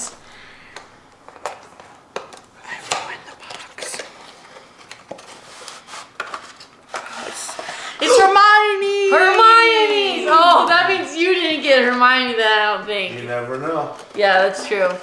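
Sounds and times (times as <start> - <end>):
cardboard packaging being opened: 1.3 - 7.7.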